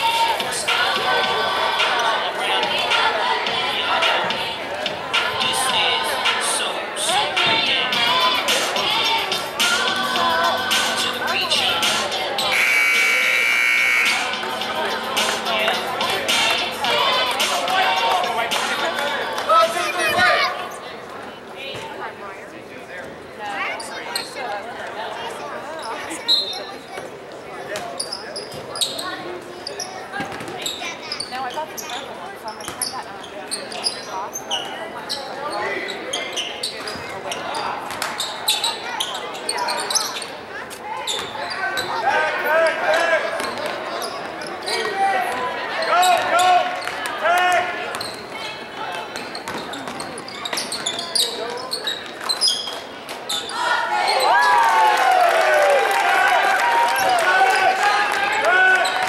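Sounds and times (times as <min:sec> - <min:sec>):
shoe squeaks: 0:23.8 - 0:24.4, 0:25.8 - 0:27.0, 0:28.0 - 0:40.4, 0:41.0 - 0:42.0, 0:43.9 - 0:44.9, 0:48.0 - 0:53.6.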